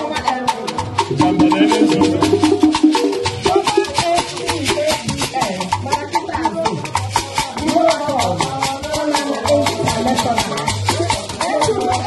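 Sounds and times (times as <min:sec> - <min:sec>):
shakers rattling: 0:00.0 - 0:12.0
voices singing a melody: 0:00.0 - 0:12.0.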